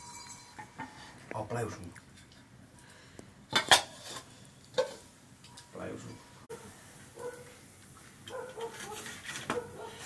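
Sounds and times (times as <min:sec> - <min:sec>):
metal bowl clinking: 0:00.0 - 0:01.0.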